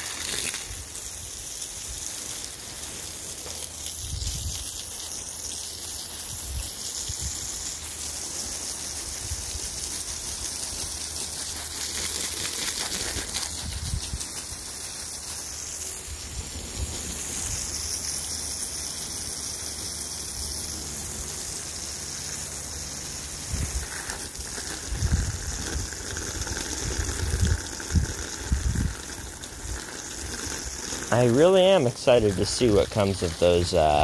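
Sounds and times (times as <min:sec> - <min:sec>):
water spraying: 0:00.0 - 0:34.0.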